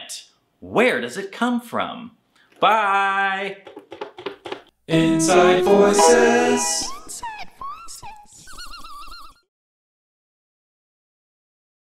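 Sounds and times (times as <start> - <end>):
high warbling sung note: 4.9 - 7.1.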